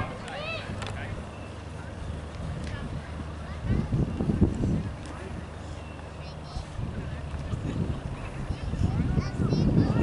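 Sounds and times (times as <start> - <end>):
faint distant voices: 0.0 - 10.0
wind rumbling on microphone: 0.0 - 10.0.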